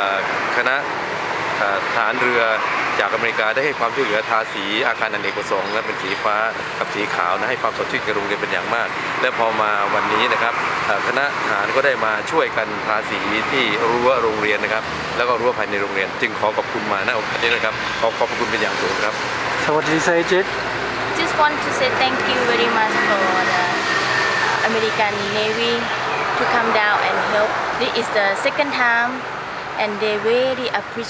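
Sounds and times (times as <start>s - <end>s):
man talking: 0.0s - 0.9s, 1.6s - 20.5s
steady background noise: 0.0s - 31.0s
person speaking: 21.2s - 23.8s.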